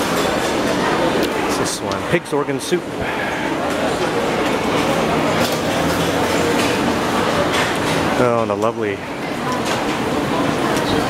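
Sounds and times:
rushing roar of crowd: 0.0 - 11.0.

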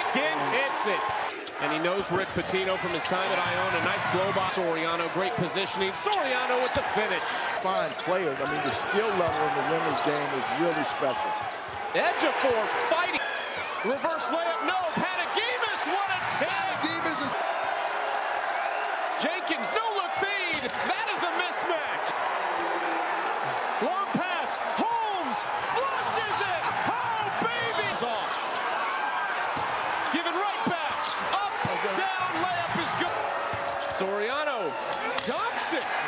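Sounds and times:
arena crowd noise: 0.0 - 36.0
sneaker squeaks: 31.0 - 31.3.

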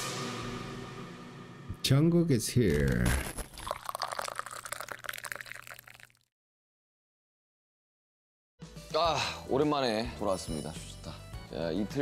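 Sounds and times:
fizzy drink poured into glass: 2.8 - 6.3.

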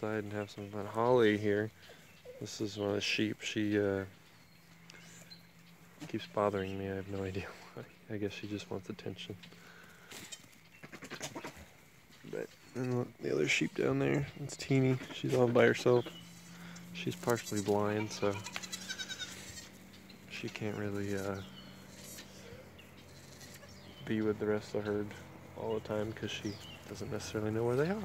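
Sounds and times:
young goats bleating: 10.8 - 11.8, 13.3 - 28.0
goat kid bleating: 17.3 - 19.8.

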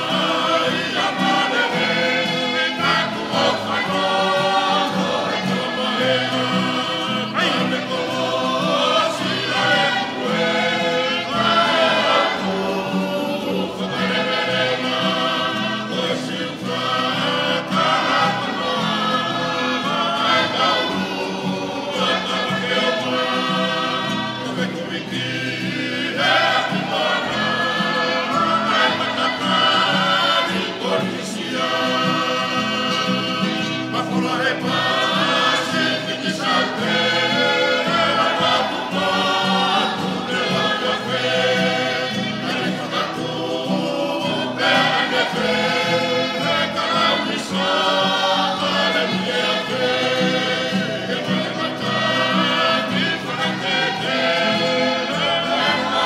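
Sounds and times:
choir singing in harmony: 0.0 - 56.0.

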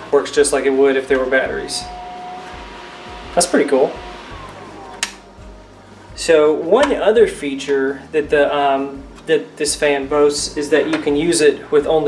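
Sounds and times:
mini fan humming: 0.0 - 9.3
switch click: 4.9 - 5.2.

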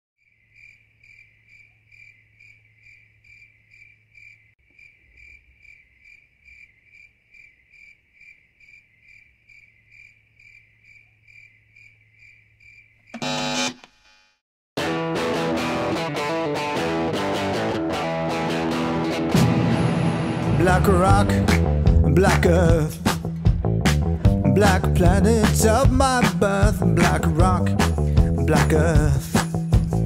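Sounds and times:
loud burst of music: 14.8 - 23.2.

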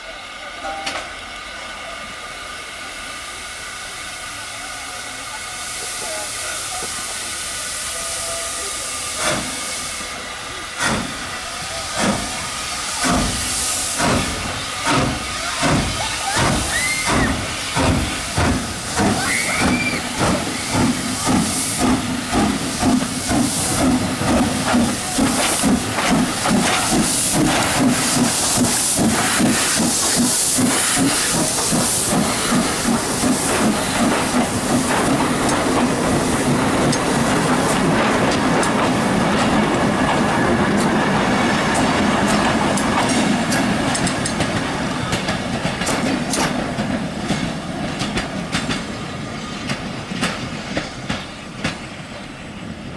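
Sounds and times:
hissing steam: 0.0 - 52.9
steam locomotive exhaust beats: 0.0 - 52.9
wheels clicking over rail joints: 41.7 - 48.9.

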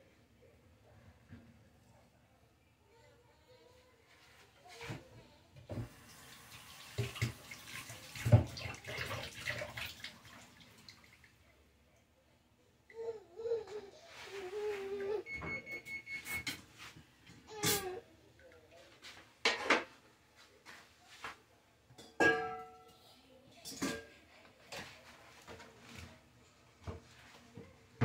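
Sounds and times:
dishes clanking at sink: 6.9 - 9.9, 19.4 - 20.0, 21.9 - 23.0, 23.6 - 25.6.

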